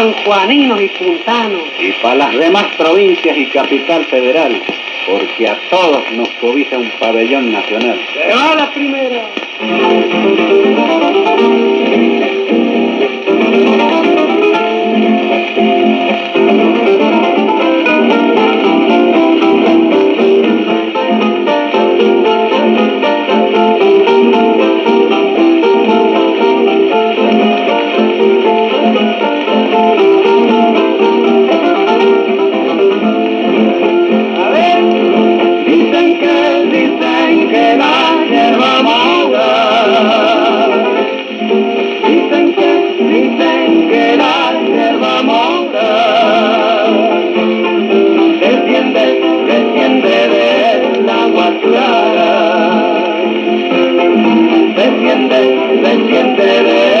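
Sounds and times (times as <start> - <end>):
guitars playing folk dance music: 0.0 - 57.0.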